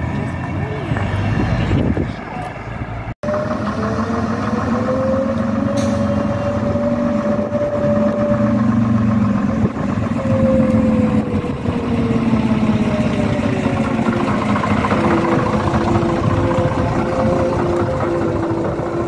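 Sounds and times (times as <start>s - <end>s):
bus engine passing: 0.0s - 19.0s
engine whine: 0.0s - 19.0s.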